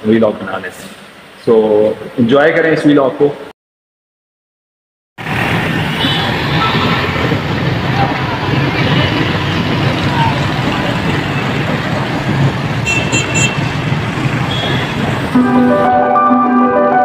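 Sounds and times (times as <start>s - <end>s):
motorcycles passing: 5.2s - 15.9s
vehicle horn beeping: 12.8s - 13.8s, 14.4s - 15.9s.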